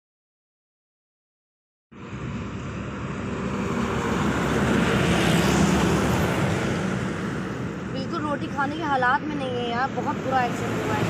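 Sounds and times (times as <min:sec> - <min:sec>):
vehicle passing close by: 0:02.0 - 0:11.0.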